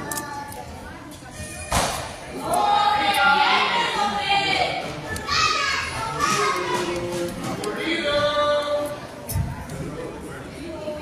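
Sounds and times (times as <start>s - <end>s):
children shouting in a hall: 5.2s - 7.0s.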